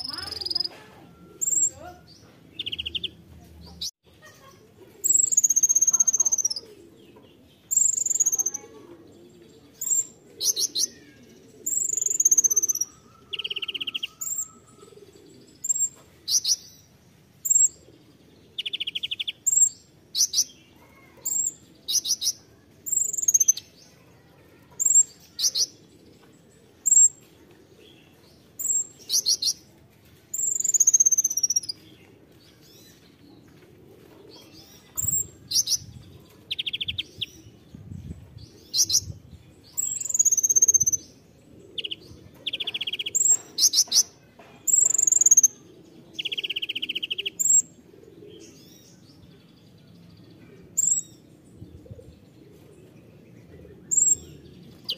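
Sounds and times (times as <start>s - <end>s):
bird singing high sharp chirps: 1.4s - 1.8s, 2.5s - 3.2s, 7.7s - 8.6s, 11.7s - 14.6s, 22.9s - 23.6s, 39.8s - 41.0s, 44.7s - 45.5s.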